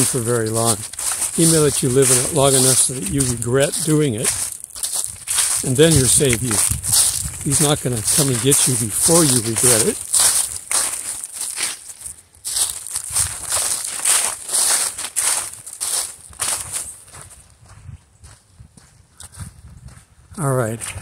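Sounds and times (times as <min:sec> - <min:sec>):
footsteps crunching through dry leaves: 0:00.0 - 0:20.0.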